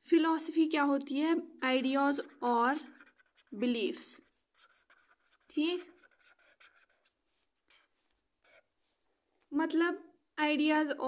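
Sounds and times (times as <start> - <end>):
pen scratching on paper: 1.9 - 9.0.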